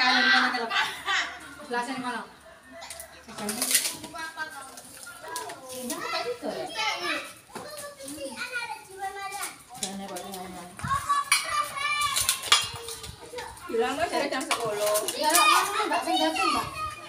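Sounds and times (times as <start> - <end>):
children playing: 0.0 - 17.0
women and children chattering: 0.0 - 17.0.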